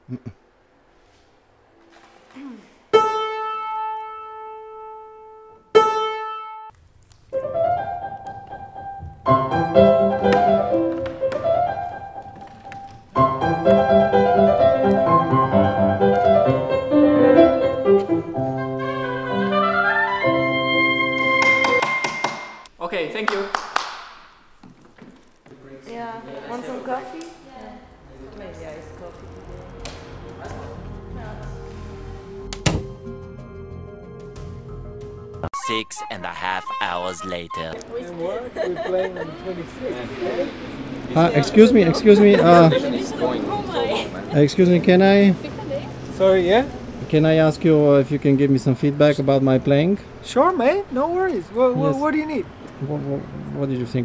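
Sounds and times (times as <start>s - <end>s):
woodwind melody with piano: 2.9s - 6.7s, 7.3s - 22.1s, 35.5s - 38.2s
hand clapping: 21.4s - 24.4s.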